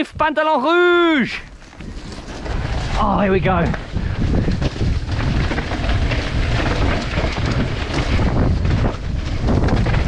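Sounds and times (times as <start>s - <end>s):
bike tyre noise: 0.7s - 10.0s
wind rush on microphone: 1.2s - 10.0s
bike rattling and knocking: 1.5s - 10.0s.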